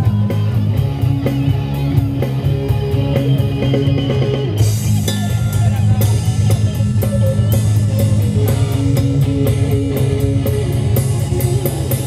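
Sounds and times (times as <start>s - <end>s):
drum kit with cymbal hits: 0.0s - 12.0s
electric guitar: 0.0s - 12.0s.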